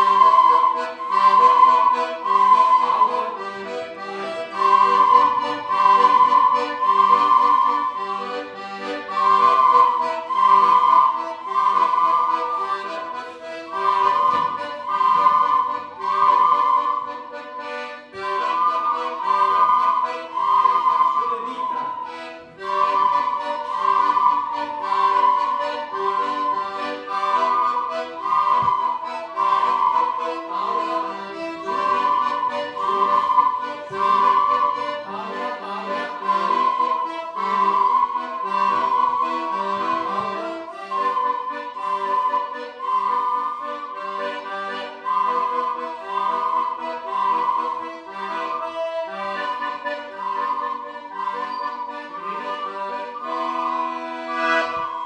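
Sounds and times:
children playing ocarinas: 0.0 - 55.0
chordal backing accompaniment: 0.0 - 55.0.

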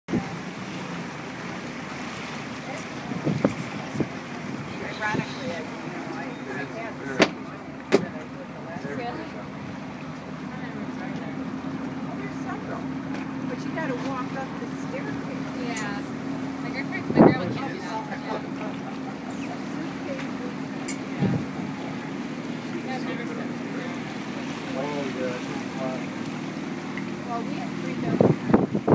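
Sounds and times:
boat engine running: 0.0 - 28.9
water noise: 0.0 - 28.9
people talking: 2.6 - 9.7, 10.4 - 26.2, 27.2 - 28.8
wind buffeting microphone: 2.8 - 6.4, 11.8 - 18.7, 19.6 - 24.6, 25.4 - 28.9.

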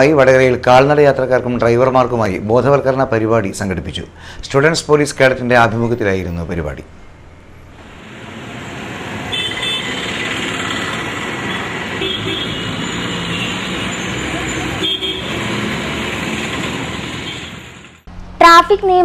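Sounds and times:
vehicles passing: 6.8 - 18.8
car horn toots: 9.3 - 10.2, 11.4 - 15.5.

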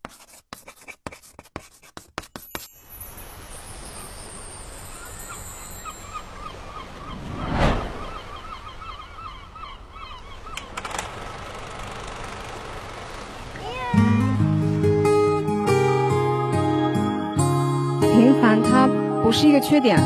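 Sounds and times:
whoosh: 7.1 - 8.4.

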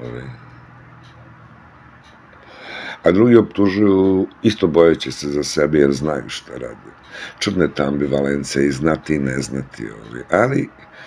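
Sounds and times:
faint background hiss: 0.0 - 11.0
breathy inhale: 2.4 - 3.0, 7.0 - 7.4.

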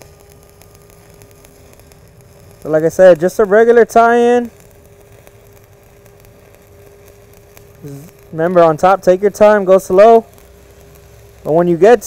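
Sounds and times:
steady hum: 0.0 - 12.0
welding arc hissing and crackling: 0.0 - 12.0.

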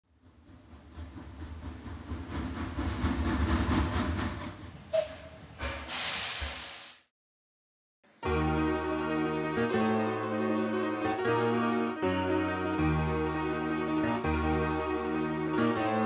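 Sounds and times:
train running: 0.0 - 6.6
loud hiss: 5.6 - 7.1.

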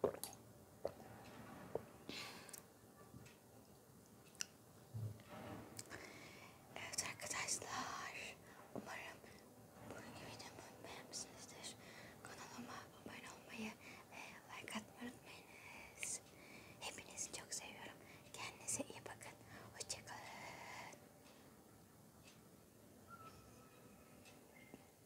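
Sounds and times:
woman whispering: 6.8 - 21.0.

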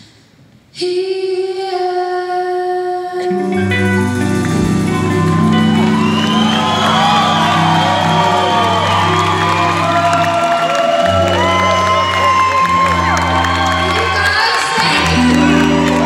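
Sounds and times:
live rock band playing slow song: 3.4 - 16.0
audience whooping and cheering: 4.7 - 16.0
female lead vocal: 13.9 - 16.0.

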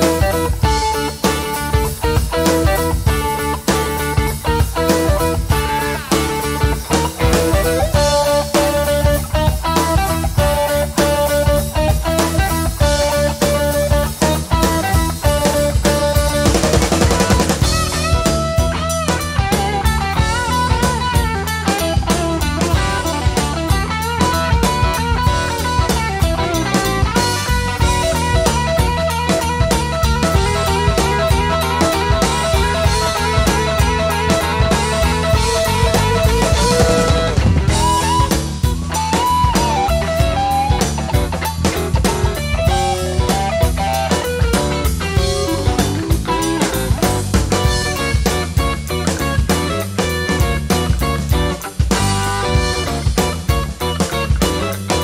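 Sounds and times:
blues-rock band playing: 0.0 - 55.0
electric guitar lead: 0.0 - 55.0
sweeping swirling guitar effect: 0.0 - 55.0.

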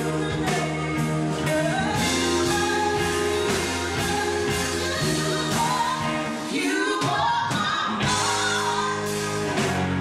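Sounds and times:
bass guitar notes: 0.0 - 6.5, 7.9 - 10.0
woman singing: 0.0 - 9.5
keyboards: 0.0 - 10.0
piano: 0.0 - 10.0.

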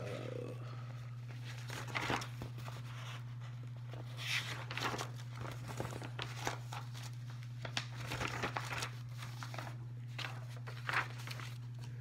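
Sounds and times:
low electrical hum: 0.0 - 12.0
thin pages turning and rustling: 1.1 - 12.0.

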